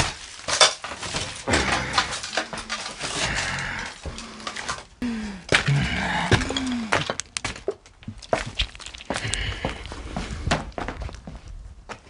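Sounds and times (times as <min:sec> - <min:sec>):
footsteps: 0:01.5 - 0:12.0.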